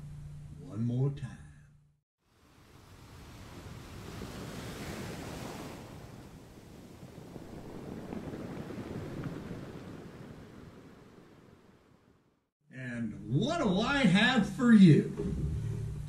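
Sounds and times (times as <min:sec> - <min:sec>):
ocean surf washing onto beach: 0:02.3 - 0:12.0.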